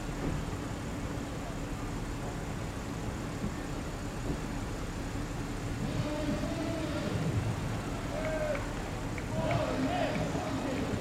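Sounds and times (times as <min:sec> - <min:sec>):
car engines idling: 0:00.0 - 0:11.0
distant voices calling out: 0:05.8 - 0:11.0.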